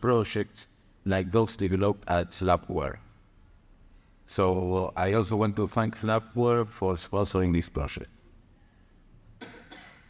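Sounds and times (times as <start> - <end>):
man coughing: 9.4 - 10.0.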